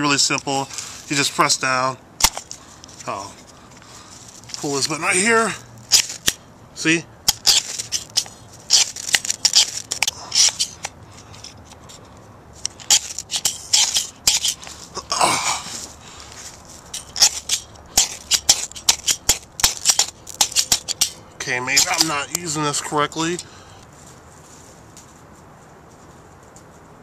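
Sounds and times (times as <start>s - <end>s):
fire starter rod scraping: 5.8s - 6.4s, 7.3s - 15.1s, 15.7s - 23.5s.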